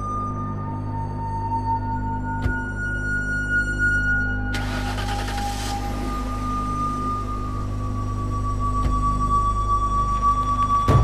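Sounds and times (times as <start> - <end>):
dramatic drone music: 0.0 - 11.0.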